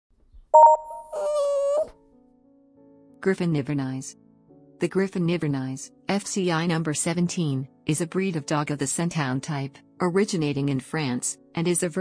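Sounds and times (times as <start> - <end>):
pulsing two-note chime: 0.6 - 1.6
held wailing tone: 0.6 - 1.9.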